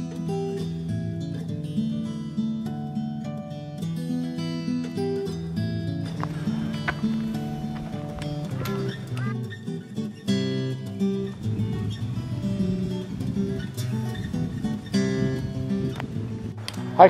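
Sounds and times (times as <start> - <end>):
acoustic guitar plucked notes: 0.0 - 17.0.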